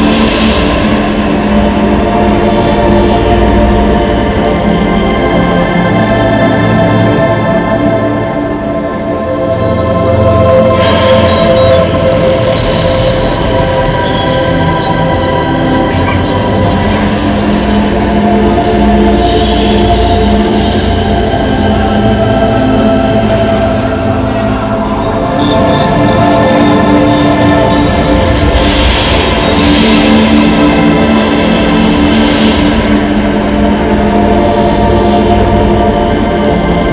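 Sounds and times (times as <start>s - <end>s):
rush of hissing noise: 0.0s - 5.2s, 27.1s - 36.9s
electronic drone over speakers: 0.0s - 36.9s.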